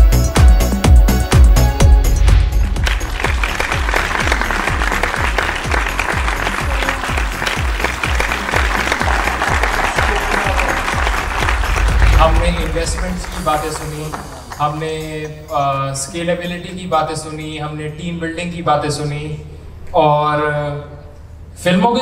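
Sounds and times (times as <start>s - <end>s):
background music with bass beat: 0.0s - 15.5s
audience applauding: 2.3s - 15.2s.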